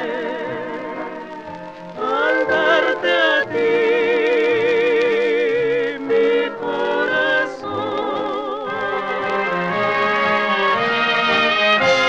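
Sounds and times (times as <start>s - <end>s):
women singing in harmony: 0.0s - 1.2s, 2.0s - 9.6s
orchestra playing: 0.0s - 4.8s, 6.1s - 12.0s.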